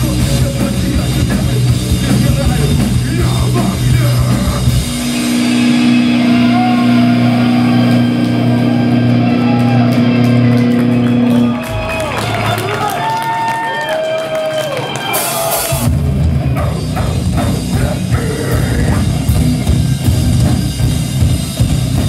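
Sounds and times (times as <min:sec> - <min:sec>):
metalcore band playing live: 0:00.0 - 0:13.4, 0:14.9 - 0:22.0.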